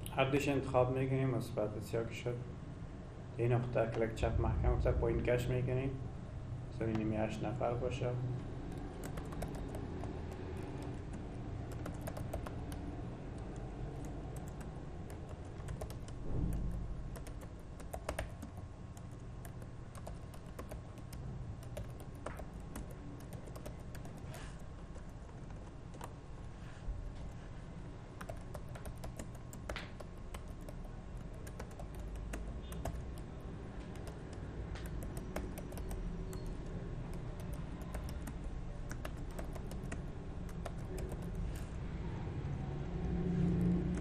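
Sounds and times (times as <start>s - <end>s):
low background rumble: 1.1s - 44.0s
computer keyboard typing: 8.4s - 26.2s, 28.2s - 41.7s, 43.5s - 44.0s.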